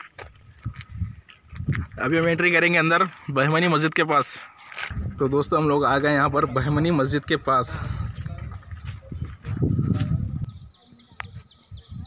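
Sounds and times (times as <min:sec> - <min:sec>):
low rumble on microphone: 0:04.9 - 0:10.6.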